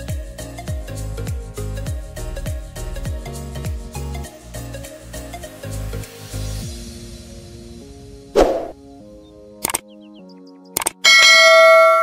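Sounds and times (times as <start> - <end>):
soft background music: 0.0 - 12.0
mouse double click: 9.6 - 9.8, 10.8 - 11.0
notification bell ding: 11.1 - 12.0.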